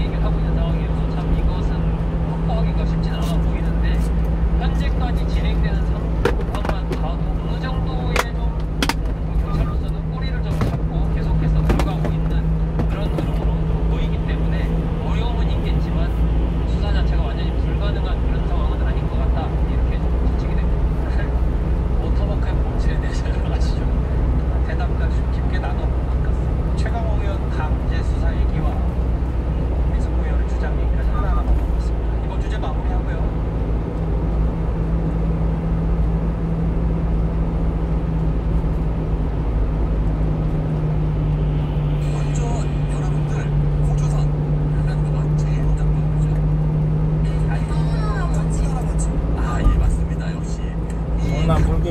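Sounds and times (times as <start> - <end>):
low engine hum: 0.0 - 51.9
road rumble inside truck cab: 0.0 - 51.9.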